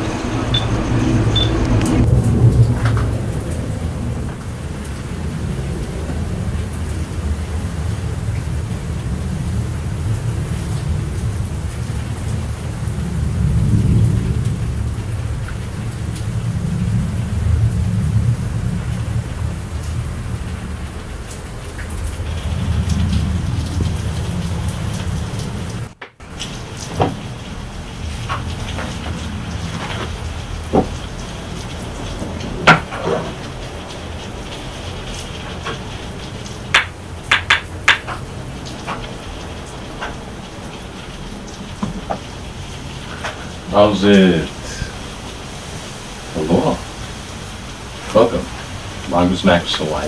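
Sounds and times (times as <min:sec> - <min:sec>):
rain falling: 0:00.0 - 0:50.0
wind rumbling on microphone: 0:00.0 - 0:50.0.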